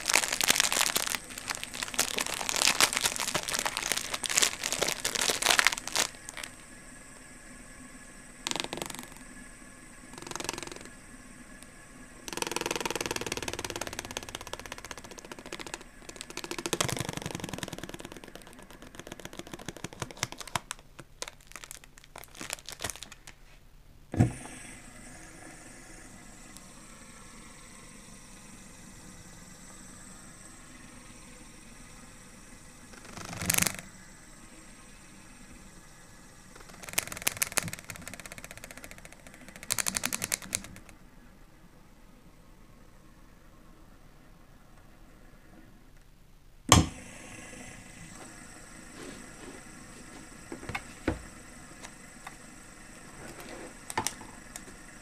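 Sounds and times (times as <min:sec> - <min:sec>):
rustling handling noise: 0:00.0 - 0:06.7, 0:13.0 - 0:23.8, 0:48.9 - 0:51.3
fidget spinner whirring: 0:00.0 - 0:23.3, 0:25.2 - 0:41.0
fidget spinner rattling clicks: 0:10.1 - 0:10.9, 0:12.2 - 0:23.4, 0:36.6 - 0:41.0.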